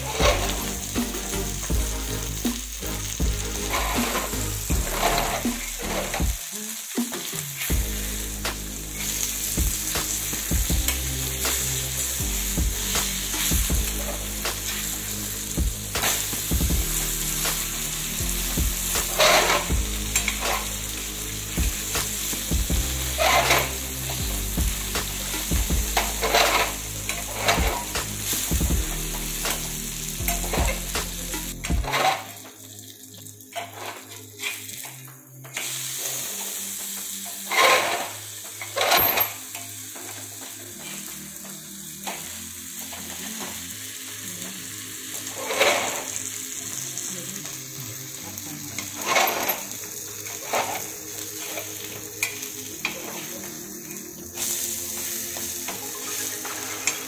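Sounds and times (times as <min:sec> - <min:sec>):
fish sizzling in oil: 0:00.0 - 0:57.0
metal spatula scraping pan: 0:02.4 - 0:06.2, 0:18.8 - 0:20.9, 0:23.1 - 0:24.1, 0:25.1 - 0:28.5, 0:37.5 - 0:39.0, 0:45.4 - 0:46.2.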